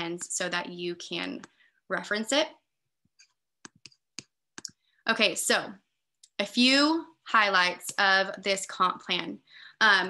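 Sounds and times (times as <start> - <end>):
computer mouse clicks: 3.1 - 4.8.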